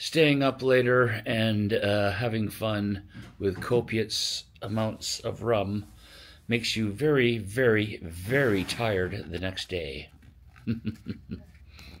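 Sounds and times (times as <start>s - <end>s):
man chuckling: 10.6s - 11.8s.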